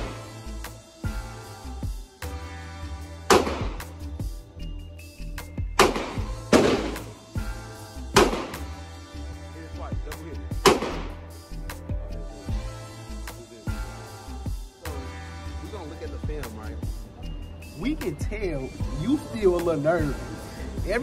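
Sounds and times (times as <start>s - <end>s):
music with bass beat: 0.0s - 21.0s
gunshots: 3.3s - 3.9s, 5.8s - 7.2s, 8.1s - 8.7s, 10.6s - 11.2s.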